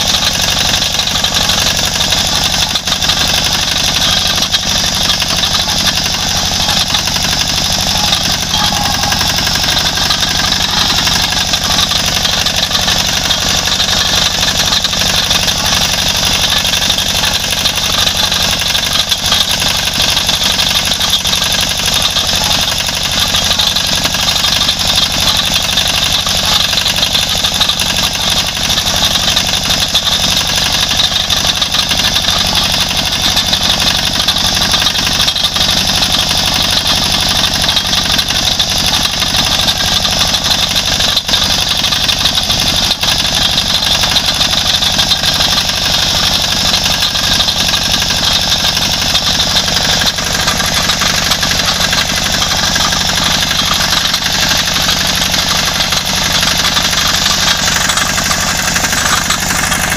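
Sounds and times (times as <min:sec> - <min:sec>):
small vehicle engine running: 0:00.0 - 0:59.9.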